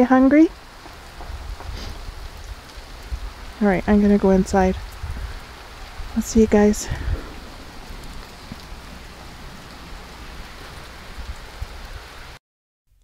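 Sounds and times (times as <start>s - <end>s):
freezing rain on icy surfaces: 0.0s - 12.4s.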